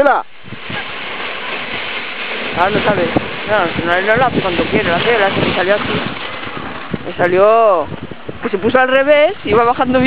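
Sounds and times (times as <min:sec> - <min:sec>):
wind noise on microphone: 0:00.0 - 0:10.0.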